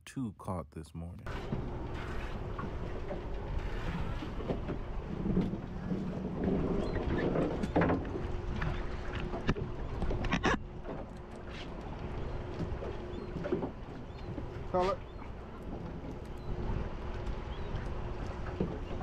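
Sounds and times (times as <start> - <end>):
boat engine hum: 0.0 - 19.0.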